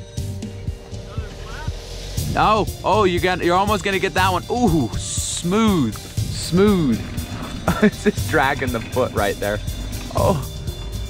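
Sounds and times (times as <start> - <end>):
engine rumbling low: 0.0 - 11.0
faint music: 0.0 - 11.0.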